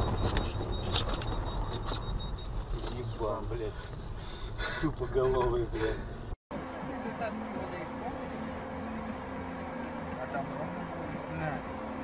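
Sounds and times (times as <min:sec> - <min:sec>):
car road rumble: 0:00.0 - 0:12.0.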